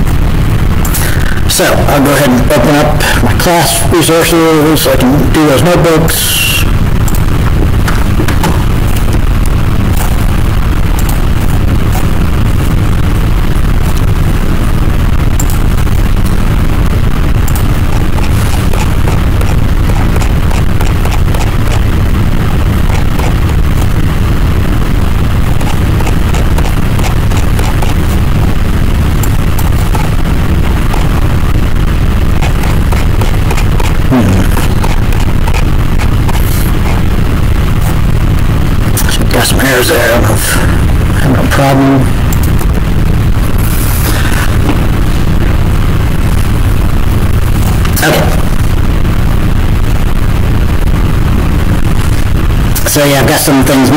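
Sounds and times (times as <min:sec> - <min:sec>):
crackling clicks: 0:00.0 - 0:01.5, 0:06.8 - 0:39.5, 0:42.2 - 0:53.0
distorted microphone rumble: 0:00.0 - 0:53.9.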